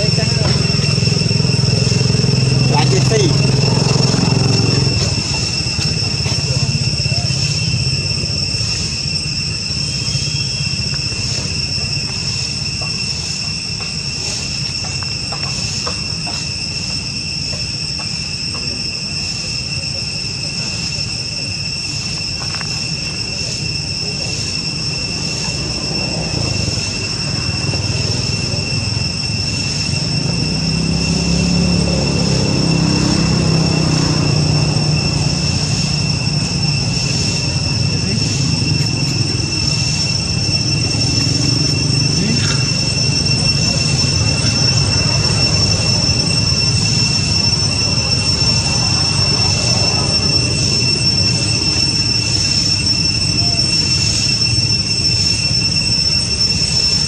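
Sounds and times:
cicadas droning: 0:00.0 - 0:57.0.

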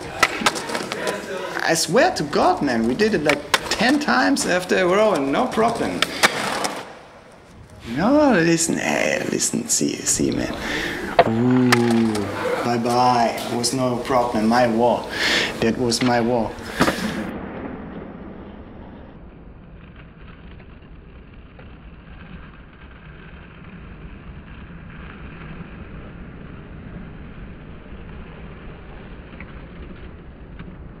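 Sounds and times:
street ambience rumble and hiss: 0:00.0 - 0:17.3.

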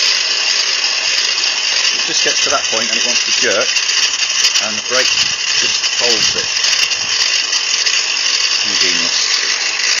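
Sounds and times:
drill motor whirring: 0:00.0 - 0:10.0
person speaking: 0:02.0 - 0:03.8.

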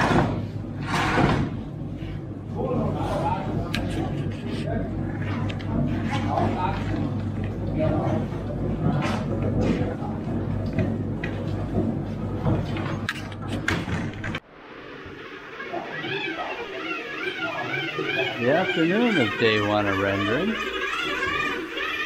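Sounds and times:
workers' voices: 0:00.0 - 0:13.1, 0:15.4 - 0:22.0
low machine hum: 0:00.0 - 0:22.0
people talking: 0:02.6 - 0:10.5, 0:15.7 - 0:22.0.

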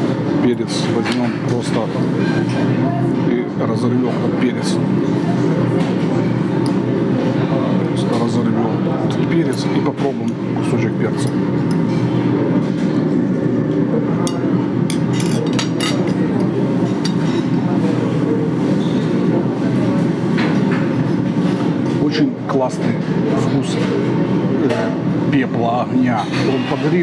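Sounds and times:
diners' voices: 0:00.0 - 0:27.0
forks clinking on plate: 0:14.3 - 0:17.6.

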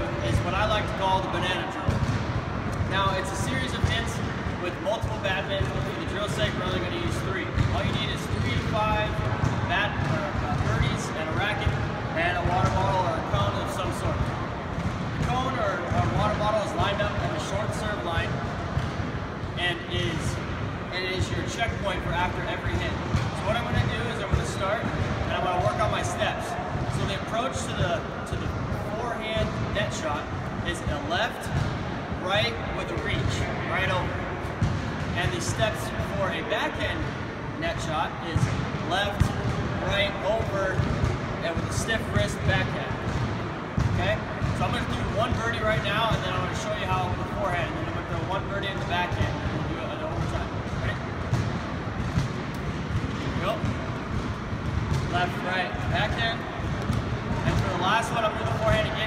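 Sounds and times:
man speaking: 0:00.0 - 0:02.0, 0:02.8 - 0:14.3, 0:15.2 - 0:18.4, 0:19.6 - 0:31.6, 0:32.2 - 0:34.2, 0:35.2 - 0:40.8, 0:41.4 - 0:42.9, 0:44.0 - 0:51.1, 0:53.4 - 0:53.7, 0:55.1 - 0:56.5, 0:57.4 - 0:59.0
sports hall hum: 0:00.0 - 0:59.0
footsteps on indoor court floor: 0:38.3 - 0:59.0.

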